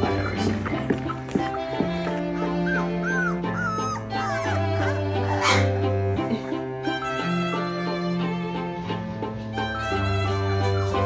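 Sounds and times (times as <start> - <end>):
puppies squeaking and whimpering: 0.0 - 7.9, 9.1 - 11.0
background music: 0.0 - 11.0.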